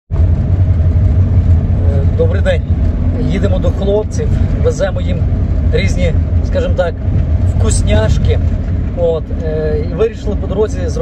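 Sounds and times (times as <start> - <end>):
vehicle engine and road noise: 0.1 - 11.0.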